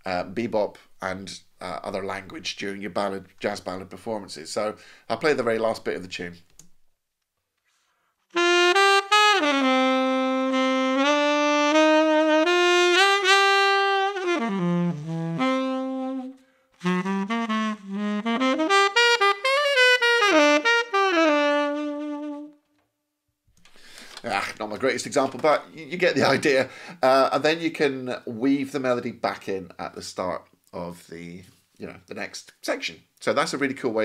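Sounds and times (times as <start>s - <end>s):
saxophonist breath: 7.6s - 8.3s, 23.7s - 24.2s, 26.7s - 27.0s
tenor saxophone playing jazz ballad: 8.3s - 22.7s.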